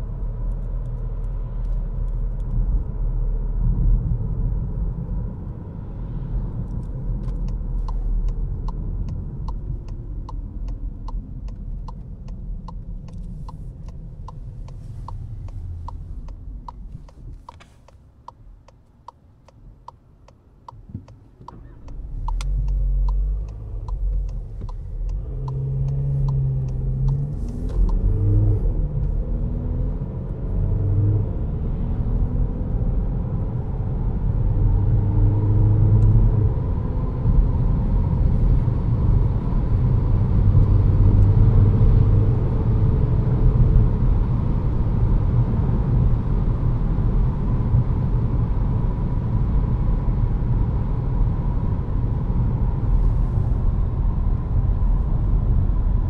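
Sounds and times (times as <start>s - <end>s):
diesel car engine accelerating: 0.0s - 56.0s.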